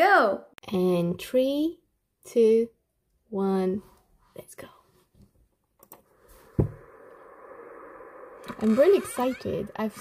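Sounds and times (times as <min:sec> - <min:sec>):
steady hum-like drone: 0:06.0 - 0:10.0
sudden thump: 0:06.5 - 0:07.0.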